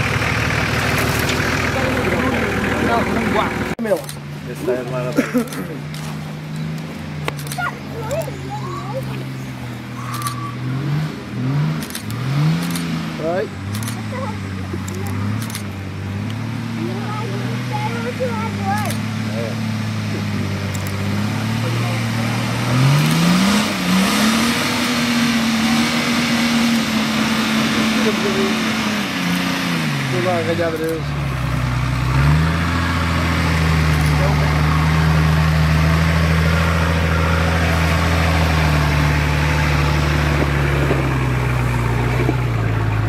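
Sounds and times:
engine working under load: 0:00.0 - 0:43.0
stones clicking under tyres: 0:00.7 - 0:01.6, 0:40.0 - 0:43.0.

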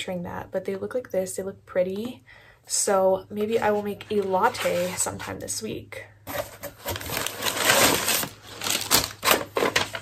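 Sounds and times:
paper packaging rustling: 0:06.3 - 0:10.0.

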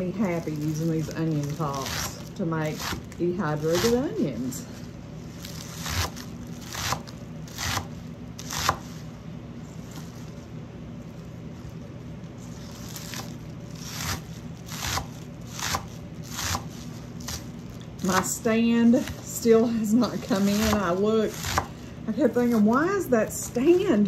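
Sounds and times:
low steady hum: 0:00.0 - 0:24.0
knife chopping on wooden board: 0:02.8 - 0:03.1, 0:05.8 - 0:09.0, 0:13.9 - 0:17.4, 0:20.4 - 0:21.7.

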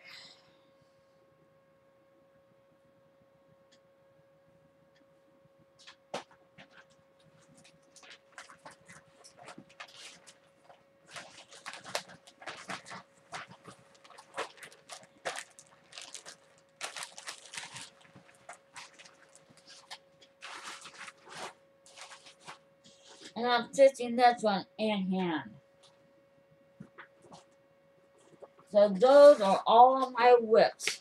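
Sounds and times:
faint steady hum: 0:00.0 - 0:31.0
plastic bags and fabric rustling: 0:05.8 - 0:23.4, 0:28.2 - 0:31.0.

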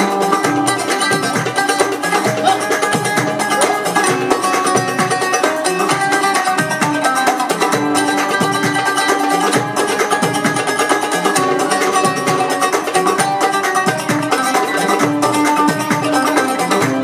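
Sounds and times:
hand drum rhythm: 0:00.0 - 0:17.0
oud plucked runs: 0:00.0 - 0:17.0.

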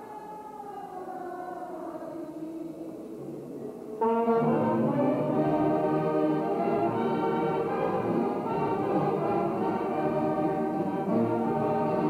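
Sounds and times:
wind band playing: 0:04.0 - 0:12.0.

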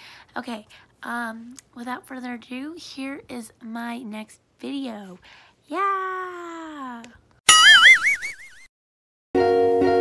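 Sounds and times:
cartoon boing: 0:07.5 - 0:08.6.

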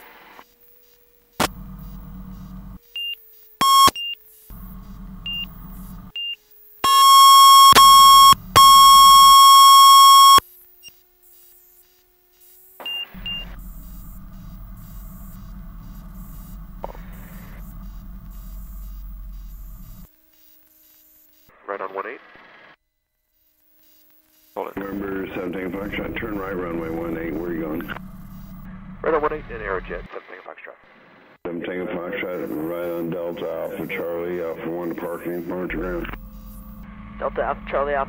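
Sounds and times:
electronic warning tone: 0:01.4 - 0:11.0, 0:12.8 - 0:21.6, 0:23.4 - 0:30.1, 0:32.0 - 0:38.0
short high beeps: 0:03.0 - 0:04.2, 0:06.2 - 0:10.4, 0:12.8 - 0:19.0
intercom hiss: 0:06.8 - 0:10.4, 0:12.8 - 0:20.6, 0:21.4 - 0:22.8, 0:24.5 - 0:38.0
faint engine note: 0:13.1 - 0:20.1, 0:24.8 - 0:30.1, 0:34.7 - 0:38.0.

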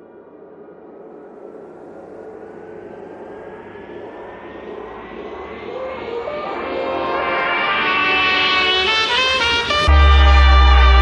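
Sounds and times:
electronic riser whoosh: 0:02.8 - 0:08.9.

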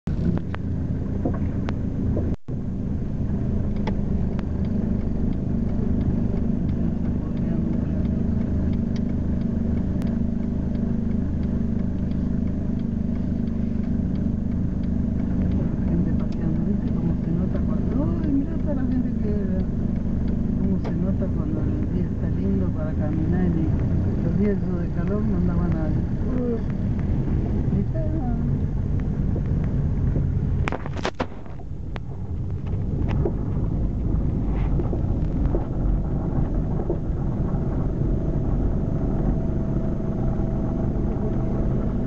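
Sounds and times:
car engine and road hum: 0:00.0 - 0:42.0.

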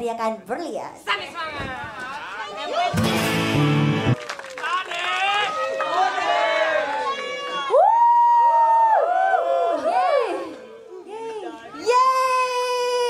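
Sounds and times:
crowd: 0:01.0 - 0:13.0.

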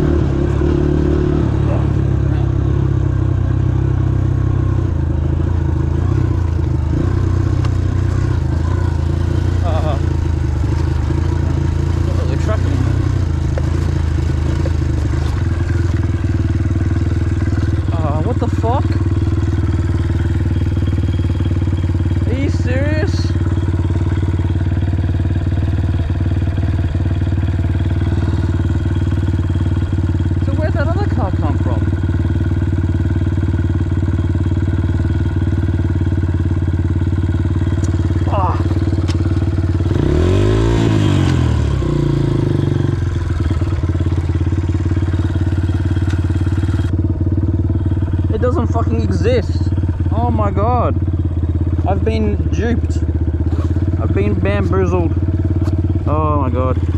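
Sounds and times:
motorcycle engine idling and revving: 0:00.0 - 0:56.9.

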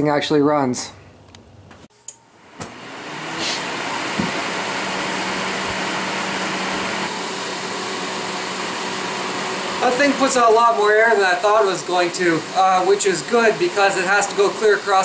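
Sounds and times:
heater fan blowing with hum: 0:01.2 - 0:15.0.

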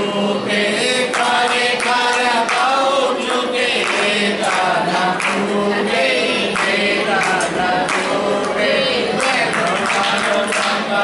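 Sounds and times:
group singing a devotional chant: 0:00.0 - 0:11.0
hand claps: 0:00.9 - 0:11.0.

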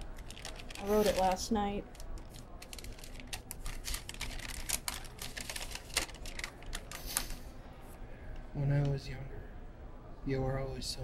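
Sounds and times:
paper crinkling: 0:00.0 - 0:07.4.

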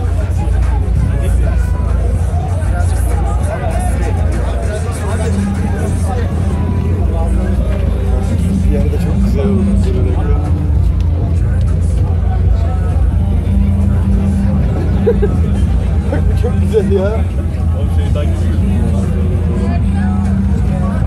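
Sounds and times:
crowd chatter: 0:00.0 - 0:21.0.

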